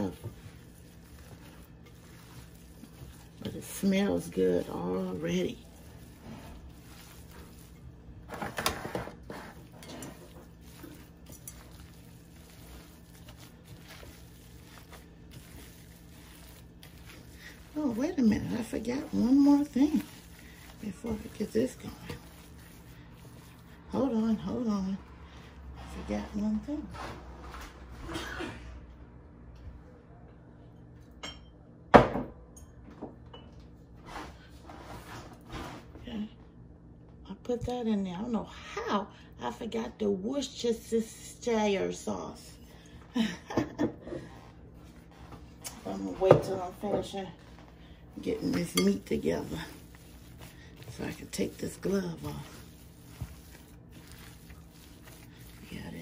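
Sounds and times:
ground beef squishing: 0.0 - 26.0, 47.1 - 56.0.

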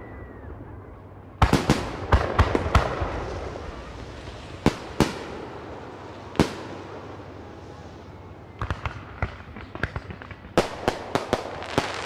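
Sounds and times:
fireworks banging: 1.4 - 12.0.

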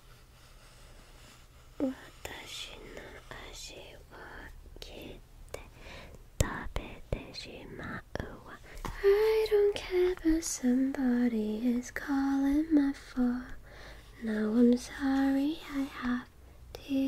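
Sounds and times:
woman singing softly: 1.8 - 5.2, 6.4 - 13.6, 14.2 - 17.0
woman whispering: 1.8 - 5.8, 6.4 - 11.7, 14.2 - 17.0.

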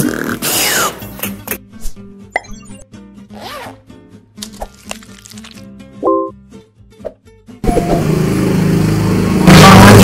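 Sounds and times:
background music: 0.6 - 10.0.

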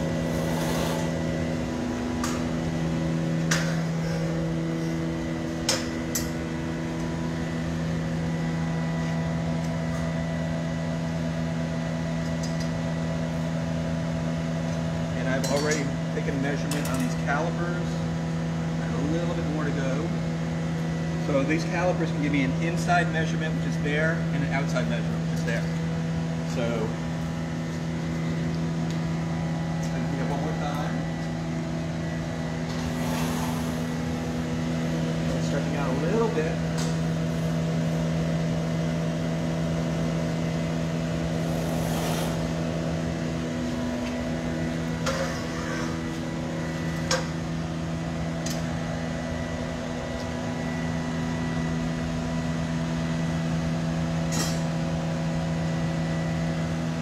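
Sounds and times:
furnace blowers humming: 0.0 - 57.0.

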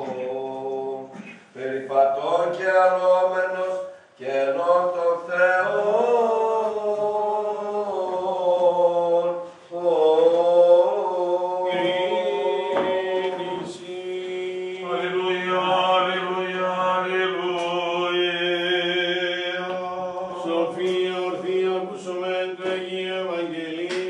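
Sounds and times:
men chanting: 0.0 - 24.0.

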